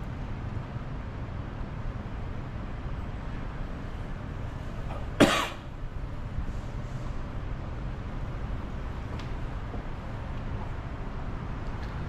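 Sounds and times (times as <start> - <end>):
low rumble of street traffic: 0.0 - 12.0
person coughing: 5.2 - 5.6.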